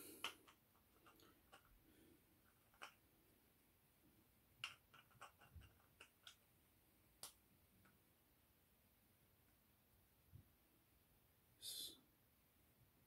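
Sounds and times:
faint metal clicks and taps: 4.6s - 6.4s.

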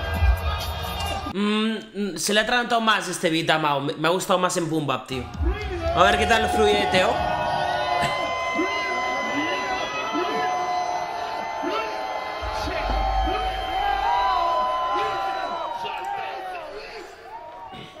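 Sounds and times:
crowd cheering and whooping: 5.2s - 18.0s
hip-hop beat: 11.7s - 16.5s.

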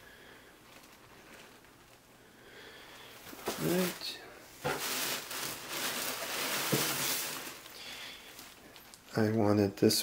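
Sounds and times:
tissue paper rustling: 0.6s - 2.0s, 3.3s - 9.1s.

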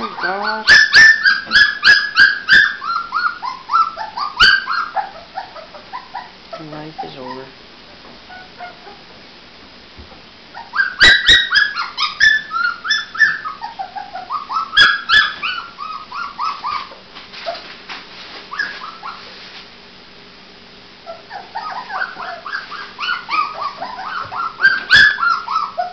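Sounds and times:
puppies whimpering and yelping: 0.0s - 7.5s, 8.3s - 9.1s, 10.5s - 17.8s, 18.5s - 19.4s, 21.0s - 25.9s.

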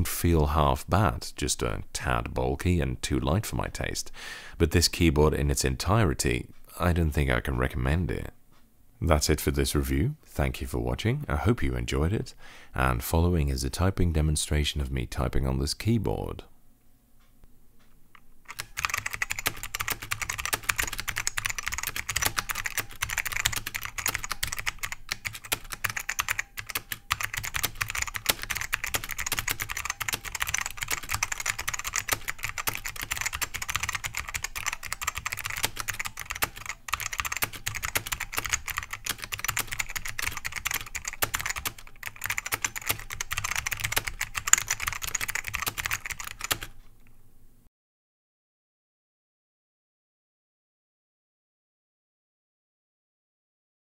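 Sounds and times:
keyboard typing: 18.2s - 46.8s.

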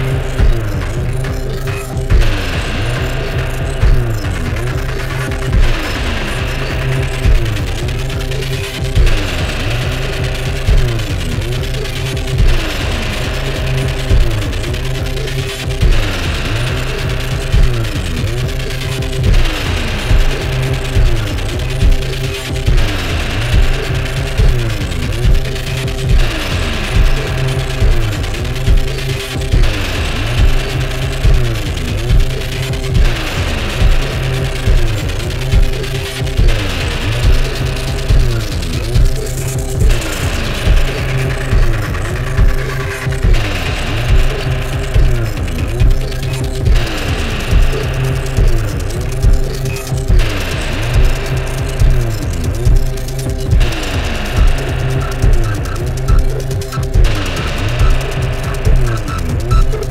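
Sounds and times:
heavy electronic drum beat: 0.0s - 59.9s
steady low synth bass: 0.0s - 59.9s.

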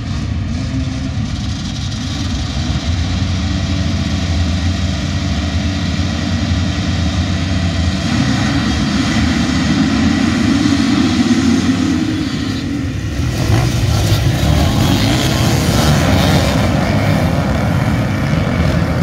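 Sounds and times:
motocross engines revving: 0.0s - 19.0s.

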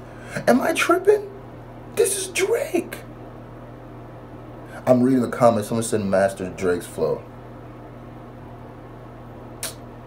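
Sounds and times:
low room hum: 0.0s - 10.0s.

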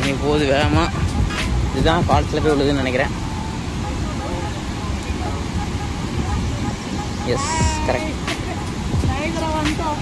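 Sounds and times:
faint voices: 0.0s - 10.0s
river rapids roaring: 0.0s - 10.0s.

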